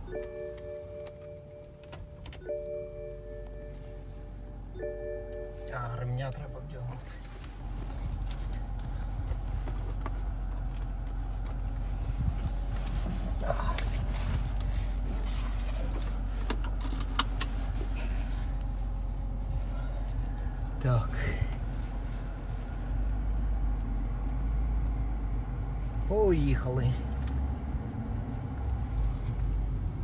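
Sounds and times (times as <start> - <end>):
car engine idling: 0.0 - 30.0
seatbelt clicks: 16.4 - 17.6.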